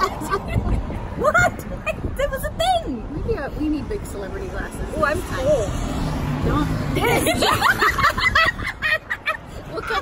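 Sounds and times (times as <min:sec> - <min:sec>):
women talking: 0:00.0 - 0:05.8, 0:06.4 - 0:07.9, 0:09.6 - 0:10.0
golf cart rumbling: 0:00.0 - 0:10.0.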